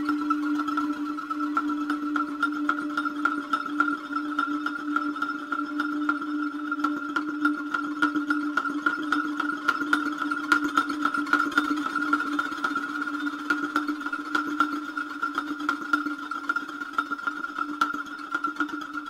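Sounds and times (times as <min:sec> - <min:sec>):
steady held tones: 0:00.0 - 0:11.3.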